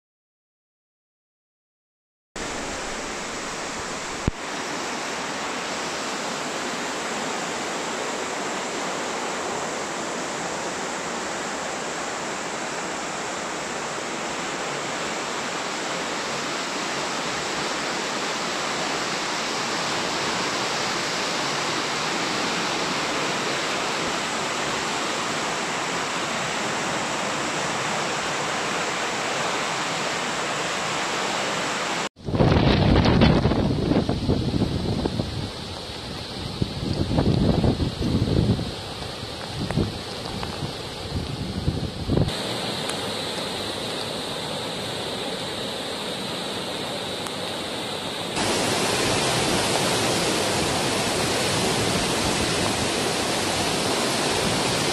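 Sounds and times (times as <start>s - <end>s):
floodwater rushing: 2.4s - 54.9s
wind buffeting microphone: 32.2s - 42.4s.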